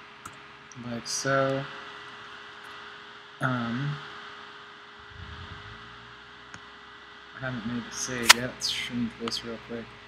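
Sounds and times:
faint constant tones: 0.0s - 10.0s
faint low rumble: 5.0s - 8.6s
steady hiss: 5.2s - 9.8s.

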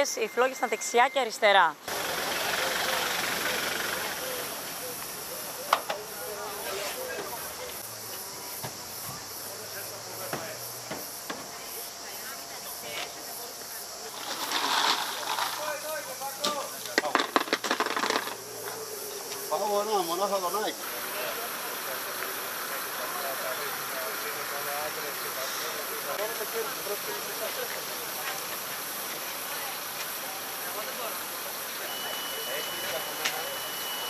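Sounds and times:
people talking: 0.0s - 17.3s, 18.5s - 34.0s
steady hiss: 0.0s - 34.0s.

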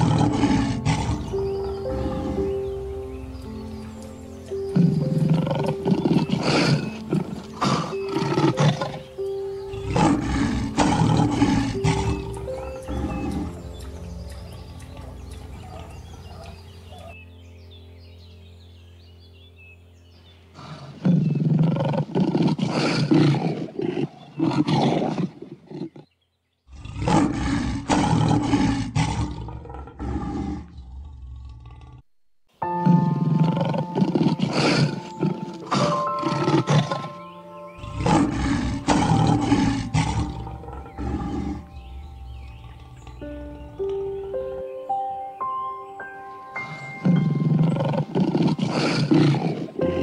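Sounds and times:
lions roaring: 0.0s - 2.6s, 4.7s - 9.0s, 9.6s - 17.2s, 20.6s - 26.0s, 26.7s - 32.0s, 33.2s - 37.2s, 37.8s - 44.0s, 47.0s - 50.0s.

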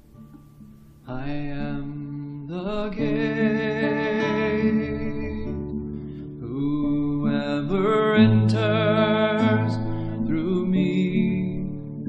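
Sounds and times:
worship song singing: 1.1s - 12.0s.

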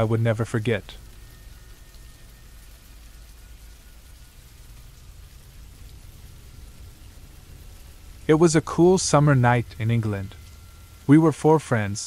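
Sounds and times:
low rumbling drone: 0.0s - 12.0s
rain hiss: 0.0s - 12.0s.

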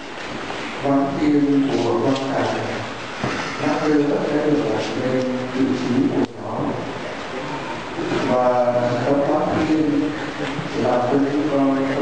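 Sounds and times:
congregation chanting prayers: 0.8s - 12.0s.

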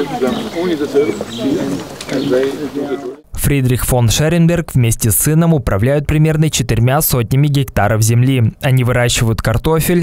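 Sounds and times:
pigeons cooing: 0.0s - 3.2s
man talking outdoors: 0.0s - 10.0s.

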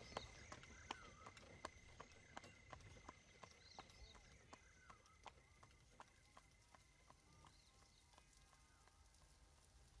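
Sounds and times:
faint ticks: 4.5s - 10.0s.

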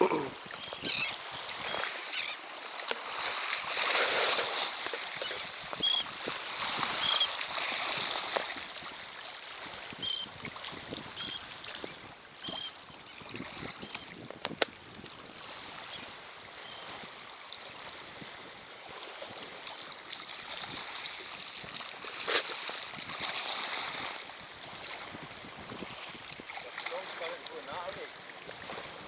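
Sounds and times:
wind on microphone: 0.0s - 2.1s, 3.0s - 19.8s, 20.4s - 27.0s, 27.7s - 29.0s
sea noise: 0.0s - 29.0s.

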